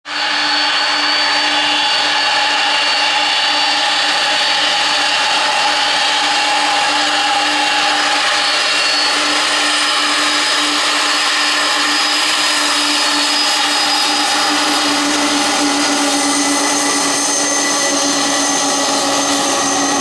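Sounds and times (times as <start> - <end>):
jet engines whining: 0.1 - 20.0.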